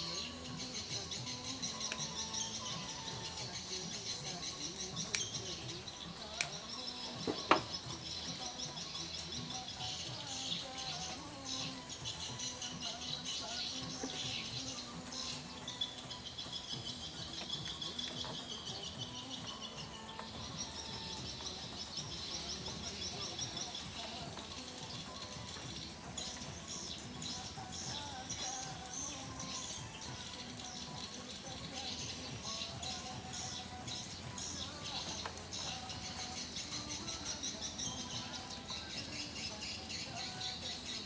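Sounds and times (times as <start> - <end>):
birds chirping and trilling: 0.0 - 41.0
faint background music: 0.0 - 41.0.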